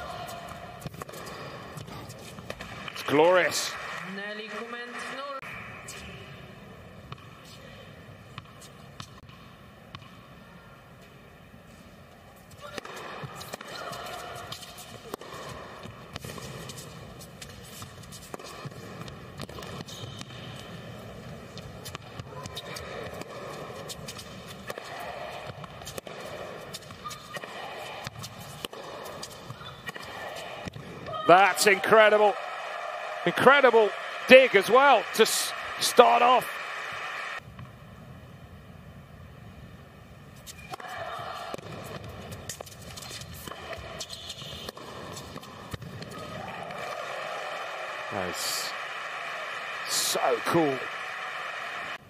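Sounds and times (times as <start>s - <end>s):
racket striking ball: 0.8s - 3.0s, 12.6s - 20.7s, 21.6s - 31.2s, 40.7s - 47.0s.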